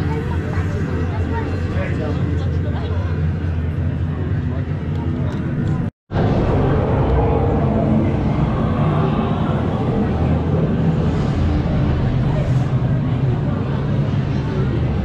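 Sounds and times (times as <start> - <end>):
crowd chatter: 0.0 - 15.0
steady low hum: 0.0 - 15.0.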